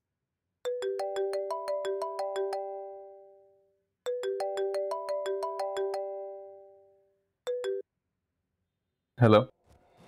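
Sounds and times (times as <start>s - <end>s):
mobile phone ringtone: 0.7s - 7.8s.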